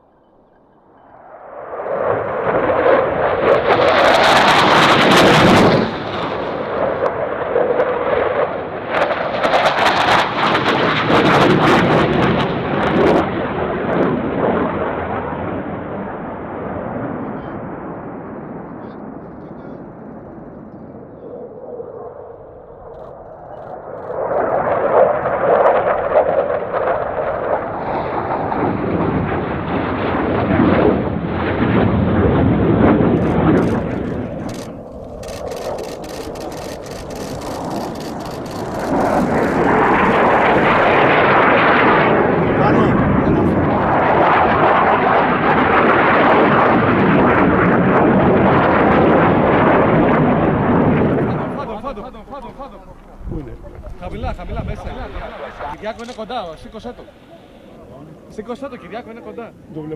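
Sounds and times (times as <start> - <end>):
fighter jets flying past: 0.0 - 59.9
camera shutter burst clicks: 33.2 - 39.3, 56.0 - 56.3.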